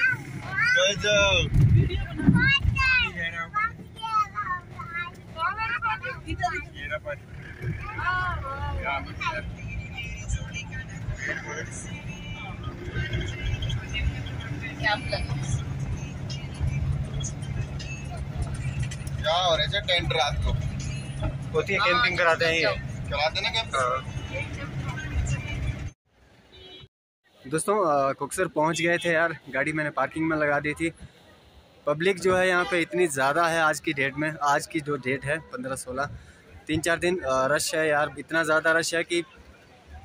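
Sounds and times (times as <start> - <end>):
people talking: 0.0 - 15.7, 17.8 - 25.8
car engine and tyres rumbling: 0.0 - 40.0.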